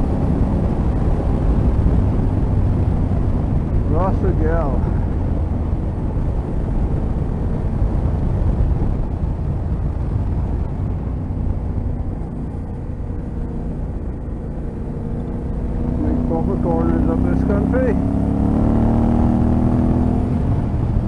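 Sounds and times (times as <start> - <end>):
motorcycle engine running: 0.0 - 21.0
wind rush over microphone: 0.0 - 21.0.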